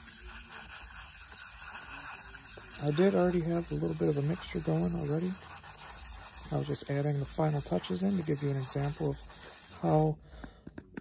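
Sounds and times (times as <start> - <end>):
brush scraping powder in cup: 0.0 - 10.2.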